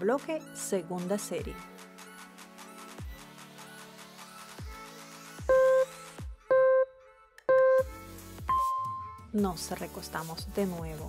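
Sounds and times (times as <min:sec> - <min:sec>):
countdown timer beeps: 0:05.5 - 0:05.9, 0:06.5 - 0:06.9, 0:07.5 - 0:07.9, 0:08.5 - 0:09.2
electronic music with low beat: 0:05.5 - 0:06.9, 0:07.5 - 0:09.6.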